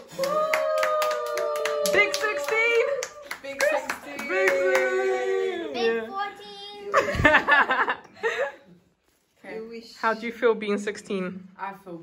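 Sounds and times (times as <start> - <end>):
people clapping: 0.0 - 5.6.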